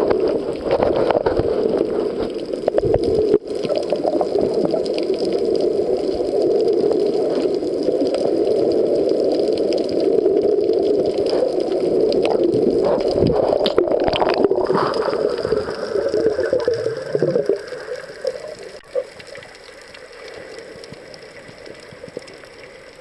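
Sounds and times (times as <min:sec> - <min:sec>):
muffled underwater water rush: 0:00.0 - 0:23.0
faint clicks: 0:15.8 - 0:23.0.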